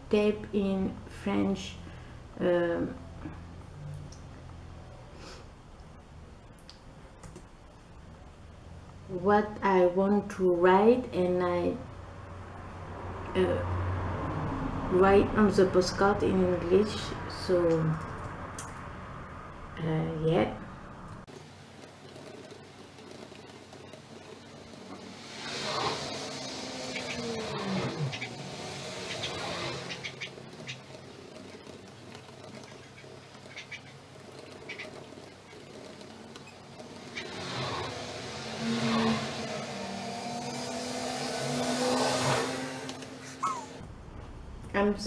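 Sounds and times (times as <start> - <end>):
vehicles passing: 0.0 - 45.0.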